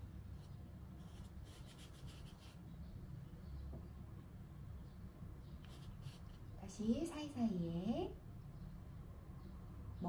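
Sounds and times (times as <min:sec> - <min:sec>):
ink brush scratching paper: 0:00.3 - 0:02.7, 0:05.6 - 0:06.5.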